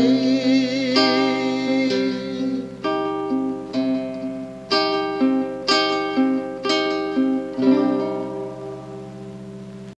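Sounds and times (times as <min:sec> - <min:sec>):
classical guitar chord ringing: 0:00.0 - 0:10.0.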